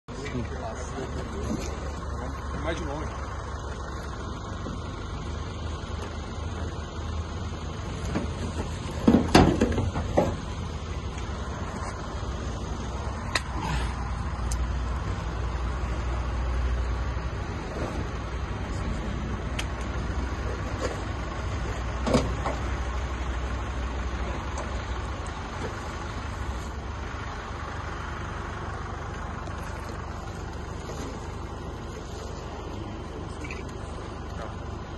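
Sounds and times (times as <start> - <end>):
steady low rumble: 0.1 - 34.9
knocks and rattles of car body: 7.9 - 10.7, 22.0 - 22.8.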